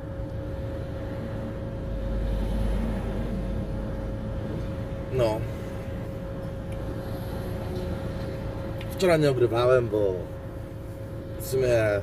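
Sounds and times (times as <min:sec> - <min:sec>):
passing vehicle: 0:00.0 - 0:10.2.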